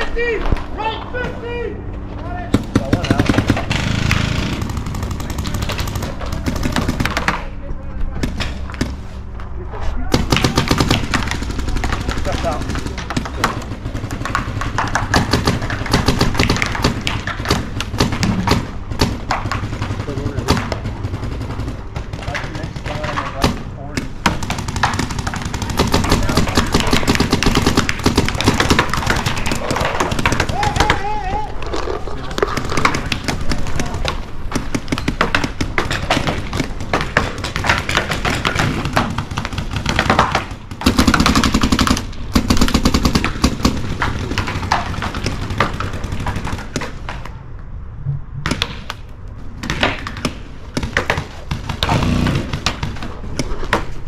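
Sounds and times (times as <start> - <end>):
paintball markers firing: 10.1 - 21.3, 21.9 - 31.2, 31.8 - 47.4, 48.4 - 54.0.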